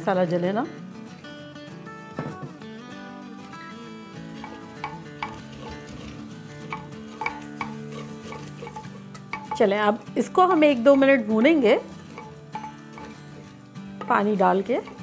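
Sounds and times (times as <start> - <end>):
soft background music: 0.0 - 15.0
spices sizzling in oil: 4.2 - 15.0
wooden spoon scraping a pot: 4.3 - 15.0
spoon knocking against pot: 4.4 - 5.8, 6.7 - 9.8, 12.1 - 15.0.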